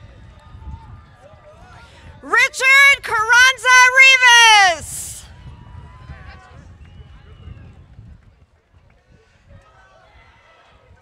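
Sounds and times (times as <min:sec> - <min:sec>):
person cheering loudly: 0:02.2 - 0:05.2.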